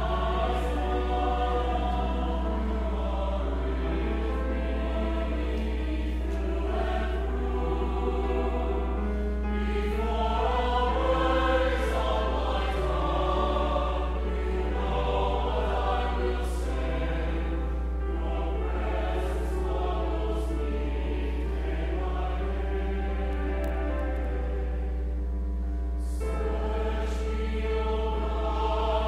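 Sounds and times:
choir singing: 0.0s - 29.0s
steady low hum: 0.0s - 29.0s.

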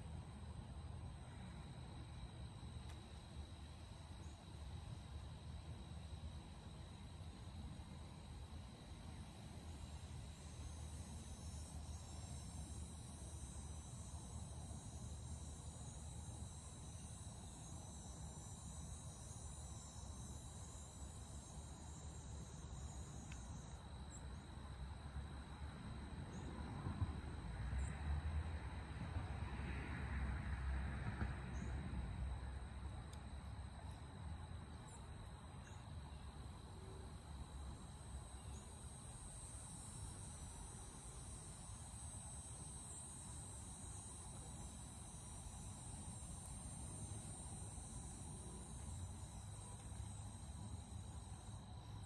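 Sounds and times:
insects chirring: 0.0s - 28.2s, 31.2s - 52.0s.

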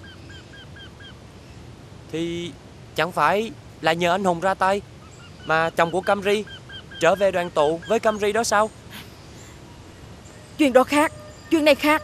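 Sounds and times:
bird calling short arched notes: 5.0s - 12.0s.

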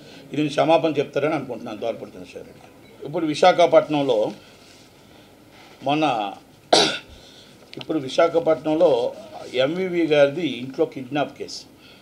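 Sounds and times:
man speaking: 0.3s - 4.4s, 7.8s - 11.7s
man coughing: 6.7s - 7.1s.

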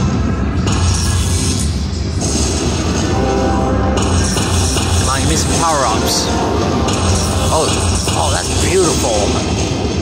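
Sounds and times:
slot machine music: 2.6s - 9.7s.

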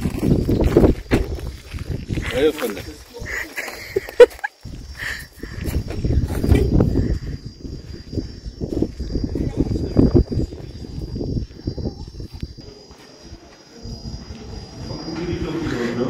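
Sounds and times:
footsteps crunching on gravel: 0.0s - 4.9s, 12.2s - 16.0s
high insect drone: 0.0s - 16.0s.

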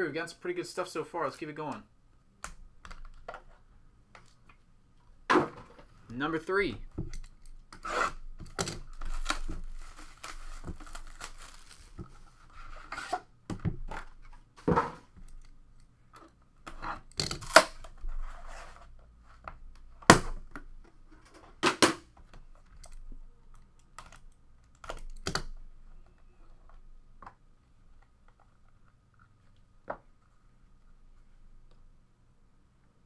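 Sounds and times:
plastic wrap tearing and crinkling: 8.6s - 12.4s.

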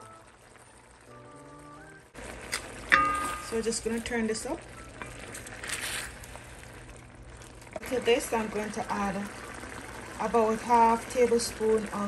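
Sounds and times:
sauce simmering: 0.0s - 12.0s.

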